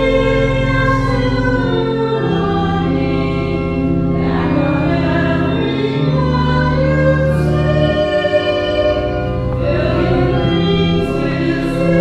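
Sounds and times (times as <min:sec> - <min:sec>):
sustained accompanying chords: 0:00.0 - 0:12.0
voices singing a hymn: 0:00.0 - 0:12.0.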